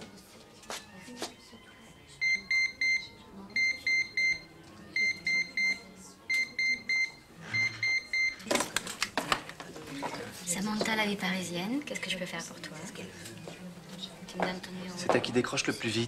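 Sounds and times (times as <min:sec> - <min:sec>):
desk telephone ringing beeps: 0:02.2 - 0:08.4.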